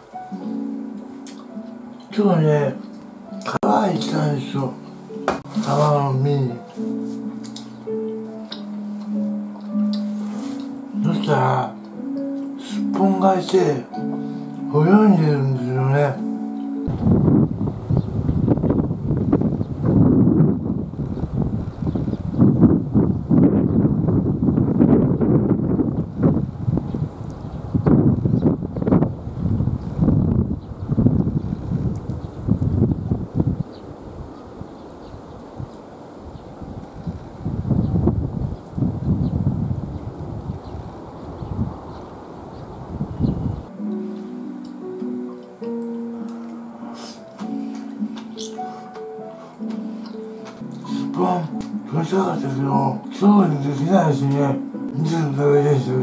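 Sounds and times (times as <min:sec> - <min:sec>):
wind buffeting microphone: 0:16.8 - 0:43.8.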